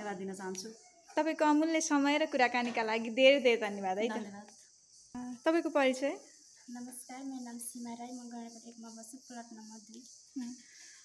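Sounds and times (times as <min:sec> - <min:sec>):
woman speaking: 0:00.0 - 0:04.5
high-pitched hiss: 0:00.0 - 0:11.0.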